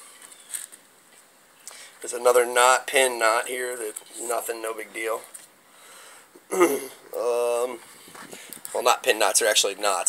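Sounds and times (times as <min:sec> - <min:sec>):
faint rustle: 0:03.8 - 0:06.4, 0:07.1 - 0:08.9.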